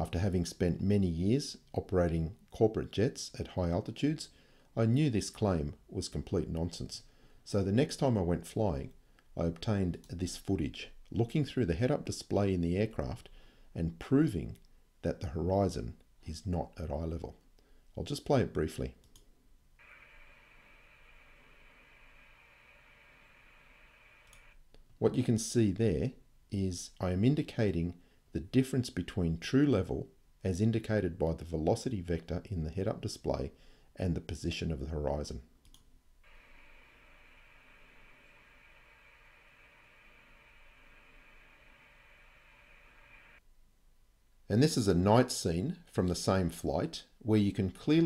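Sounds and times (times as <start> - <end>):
faint steady noise: 0.0 - 48.0
faint mouse click: 24.2 - 24.8.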